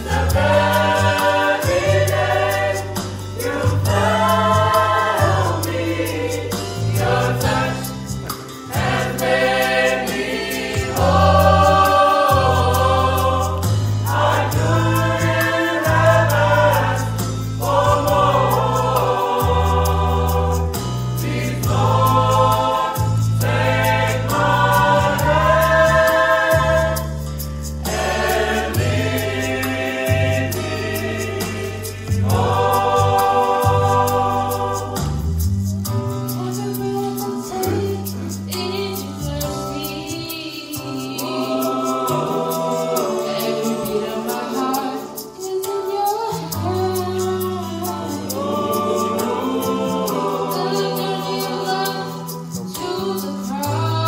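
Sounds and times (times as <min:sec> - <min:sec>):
choir singing gospel song: 0:00.0 - 0:54.0.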